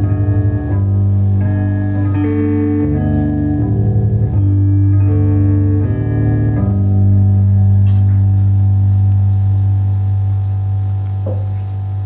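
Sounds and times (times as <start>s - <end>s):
slow guitar chords: 0.0s - 12.0s.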